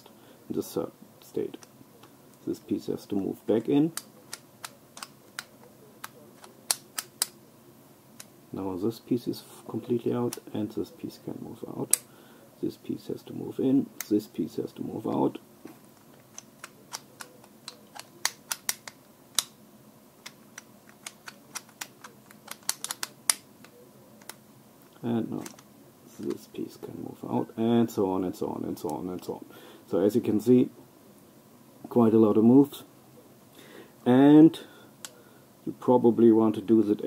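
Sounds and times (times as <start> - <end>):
plastic puzzle pieces clicking: 4.0 - 7.4, 16.2 - 19.5, 20.2 - 23.4.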